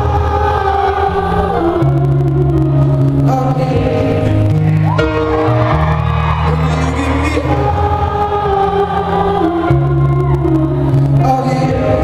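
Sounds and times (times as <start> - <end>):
man singing: 0.0 - 5.3, 6.4 - 12.0
grand piano chords: 0.0 - 12.0.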